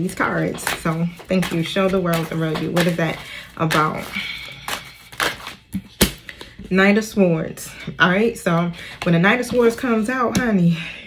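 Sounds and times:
cards shuffling and snapping: 0:00.5 - 0:06.5.

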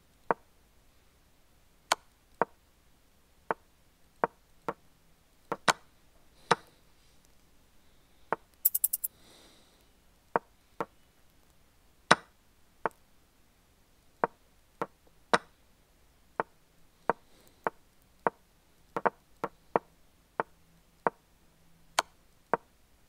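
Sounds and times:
rapid ringing clicks: 0:08.7 - 0:09.1.

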